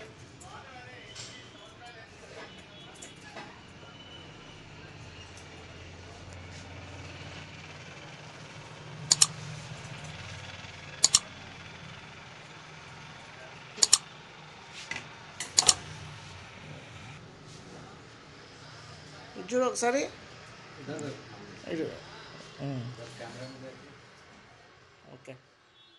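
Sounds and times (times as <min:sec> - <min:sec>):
scissors snipping hair: 0:09.1 - 0:09.4, 0:11.0 - 0:11.3, 0:13.8 - 0:14.0.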